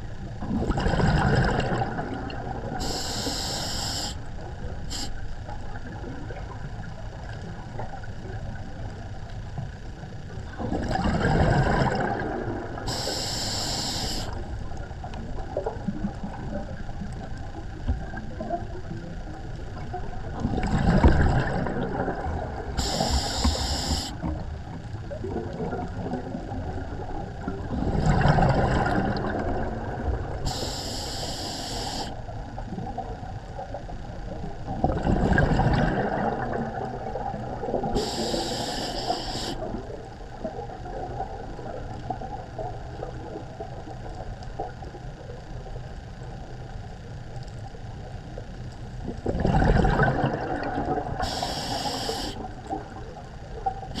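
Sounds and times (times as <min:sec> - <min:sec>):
exhaled bubbles rumbling: 0:00.0 - 0:03.0, 0:04.3 - 0:30.9, 0:32.2 - 0:38.8, 0:39.4 - 0:54.0
underwater wash: 0:00.0 - 0:54.0
regulator inhalation hiss: 0:02.8 - 0:04.3, 0:04.9 - 0:05.2, 0:12.9 - 0:14.4, 0:22.8 - 0:24.3, 0:30.4 - 0:32.2, 0:38.0 - 0:39.7, 0:51.2 - 0:52.5.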